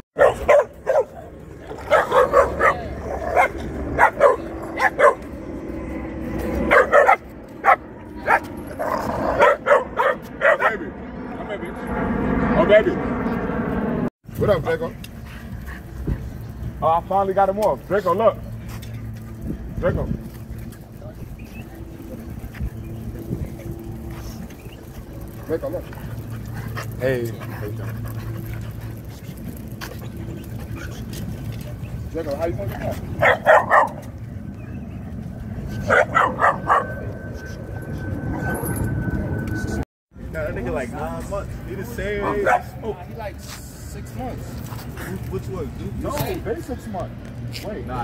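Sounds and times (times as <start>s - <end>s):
puppies barking: 0.2s - 5.4s, 6.3s - 10.8s, 33.1s - 34.1s, 35.8s - 37.0s
puppies play-fighting: 20.2s - 35.0s.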